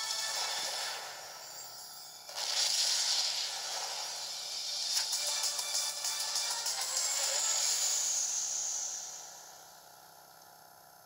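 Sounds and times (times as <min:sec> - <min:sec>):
advert soundtrack from small speaker: 0:03.4 - 0:09.4.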